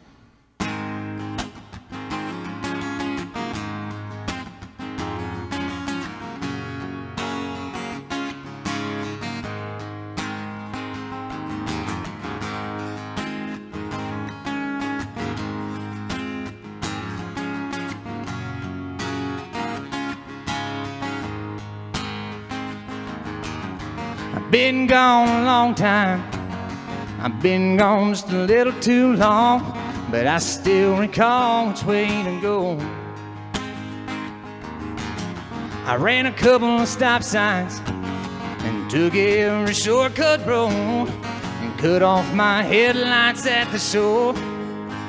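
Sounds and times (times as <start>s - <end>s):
acoustic guitar strumming: 0.0s - 45.0s.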